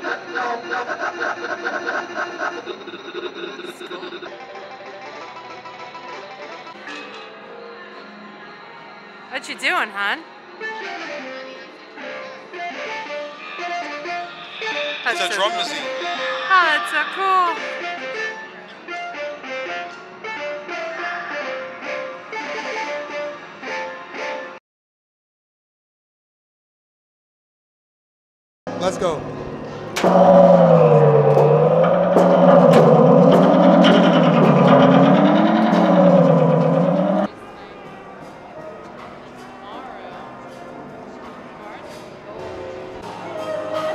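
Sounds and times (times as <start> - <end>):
plucked electronic notes: 29.9 - 37.3.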